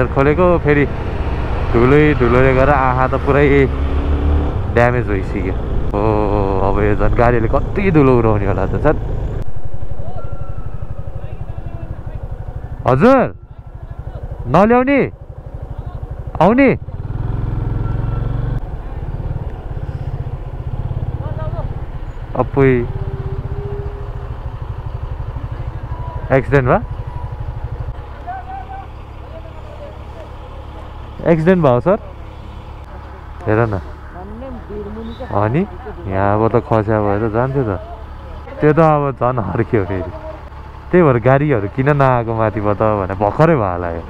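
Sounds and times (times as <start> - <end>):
motorcycle engine running: 0.0 - 44.0.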